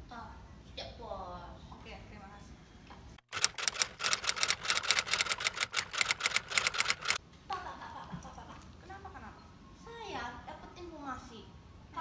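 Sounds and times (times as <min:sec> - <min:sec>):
typewriter keys clacking: 0:03.3 - 0:07.2.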